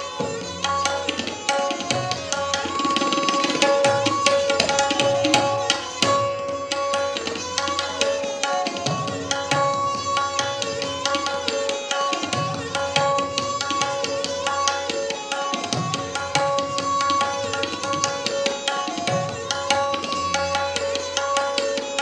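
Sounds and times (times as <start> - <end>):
bowed sarangi melody: 0.0 - 22.0
tabla drums: 0.0 - 22.0.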